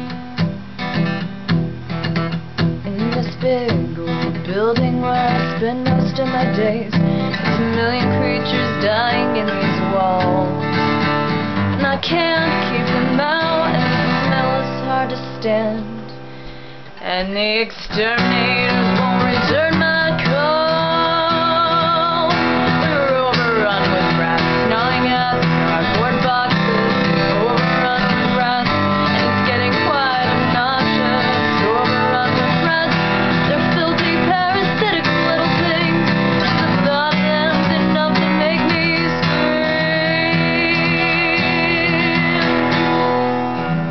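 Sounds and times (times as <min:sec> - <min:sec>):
acoustic guitar strumming: 0:00.0 - 0:43.9
woman singing: 0:02.8 - 0:16.2, 0:17.0 - 0:43.3.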